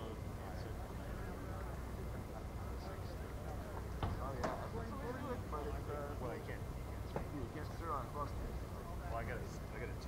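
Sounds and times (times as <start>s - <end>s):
distant people chattering: 0.0s - 10.0s.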